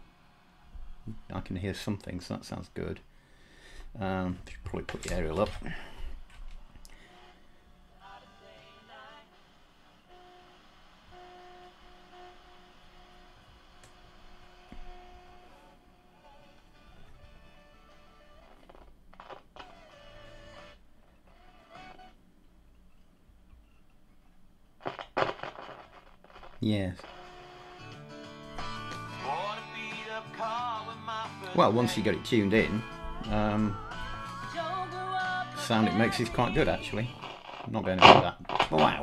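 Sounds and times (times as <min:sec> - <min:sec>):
radio tuning noise: 0:00.0 - 0:02.6, 0:04.6 - 0:22.2, 0:24.8 - 0:39.0
faint music from radio speaker: 0:00.0 - 0:22.2, 0:24.8 - 0:39.0.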